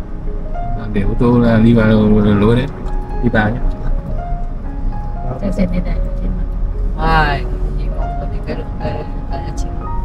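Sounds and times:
background music: 0:00.0 - 0:10.0
road and engine rumble: 0:00.0 - 0:10.0.

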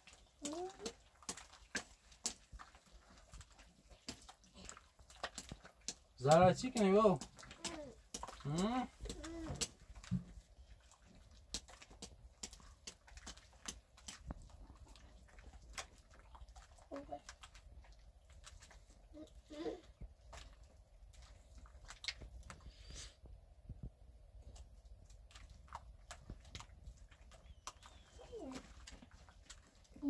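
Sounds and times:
hands working paste in metal basin: 0:00.0 - 0:30.0.

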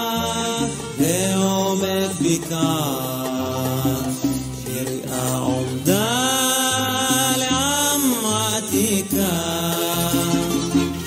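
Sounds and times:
instrumental accompaniment: 0:00.0 - 0:11.0
man singing ornamented melody: 0:00.0 - 0:11.0.

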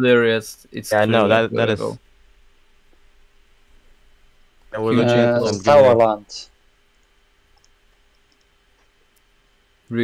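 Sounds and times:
computer mouse clicks: 0:07.0 - 0:09.3.

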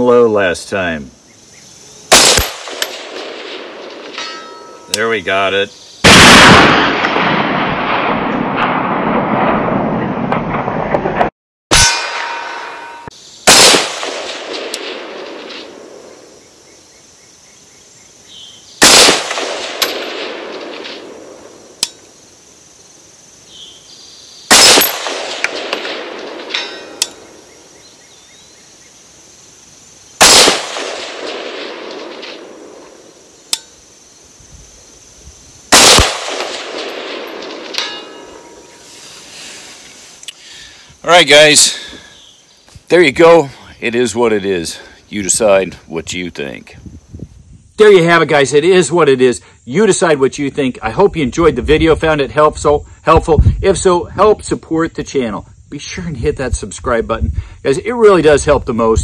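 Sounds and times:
rifle shots with rolling echo: 0:02.1 - 0:04.8, 0:06.0 - 0:12.8, 0:13.4 - 0:16.4, 0:18.8 - 0:22.1, 0:24.5 - 0:27.8, 0:30.2 - 0:33.3, 0:35.7 - 0:38.8
faint sharp click: 0:40.2 - 0:40.4.

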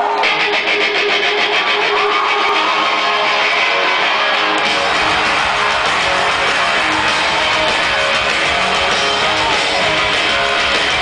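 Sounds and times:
live rock music: 0:00.0 - 0:11.0.

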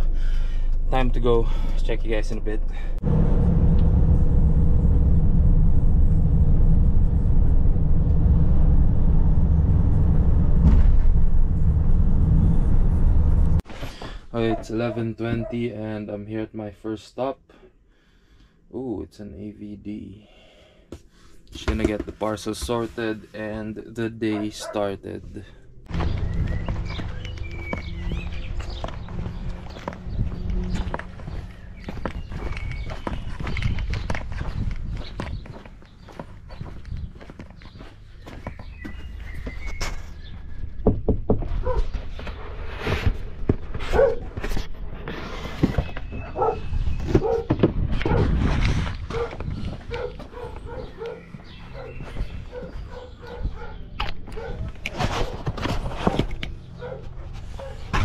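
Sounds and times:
dog barking: 0:14.4 - 0:15.6, 0:24.3 - 0:24.9, 0:43.9 - 0:44.2, 0:46.3 - 0:48.3, 0:49.1 - 0:54.7, 0:56.8 - 0:57.9
footsteps: 0:25.8 - 0:40.4.

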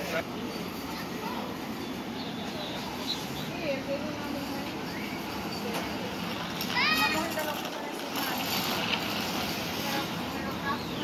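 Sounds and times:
faint voices: 0:00.0 - 0:11.0
traffic hum: 0:00.0 - 0:11.0.

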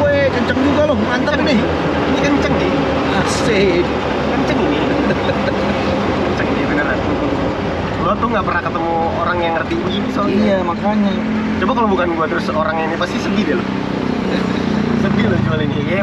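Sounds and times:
car engine and road noise rumble: 0:00.0 - 0:16.0
men talking: 0:00.0 - 0:16.0.

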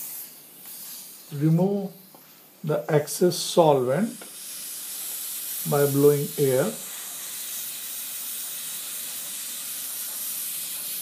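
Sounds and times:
air syringe hissing: 0:00.0 - 0:11.0.

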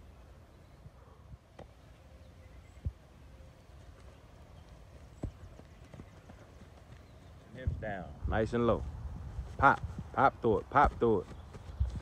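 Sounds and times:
feet landing on lawn: 0:05.0 - 0:06.0
ball thudding on grass: 0:05.2 - 0:05.4.

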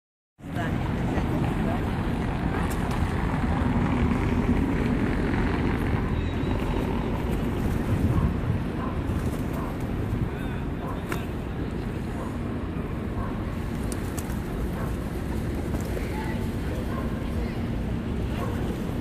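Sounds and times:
faint voices: 0:00.4 - 0:19.0
wind buffeting microphone: 0:00.5 - 0:19.0.

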